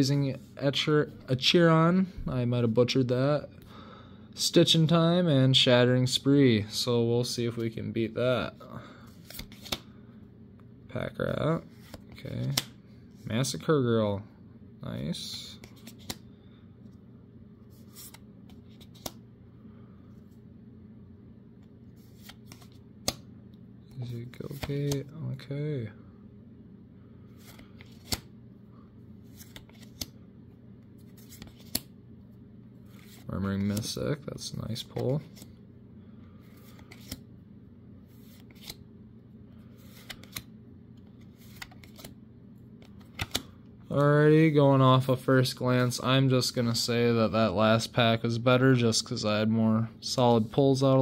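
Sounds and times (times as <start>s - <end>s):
low steady hum: 0.0s - 51.0s
trading cards flicking and sliding: 9.1s - 10.0s, 11.7s - 12.8s, 15.5s - 16.3s, 17.6s - 19.2s, 21.6s - 23.3s, 24.0s - 25.1s, 27.3s - 28.3s, 29.3s - 30.2s, 30.8s - 32.0s, 36.2s - 37.3s, 38.0s - 38.8s, 39.6s - 43.6s.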